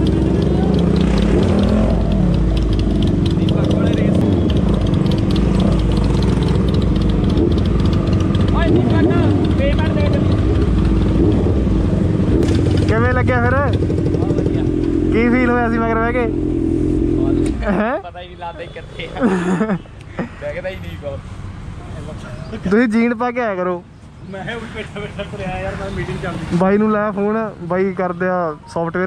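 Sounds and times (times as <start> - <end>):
motorcycle engines running: 0.0 - 20.8.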